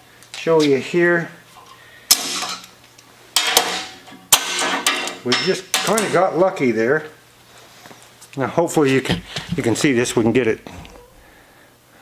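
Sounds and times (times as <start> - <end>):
metal tools clanking on steel table: 3.4 - 6.3.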